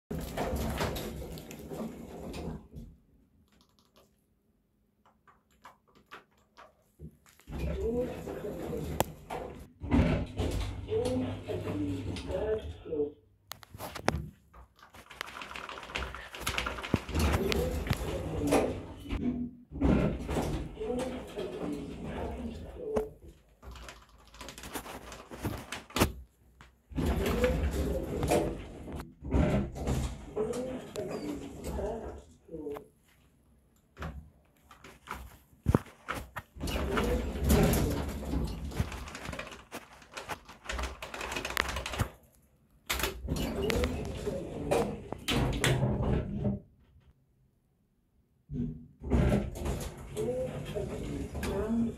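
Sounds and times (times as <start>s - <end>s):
muffled recorded voice announcement: 7.6s - 9.1s, 10.7s - 13.2s, 17.0s - 19.2s, 20.7s - 23.2s, 30.3s - 32.9s.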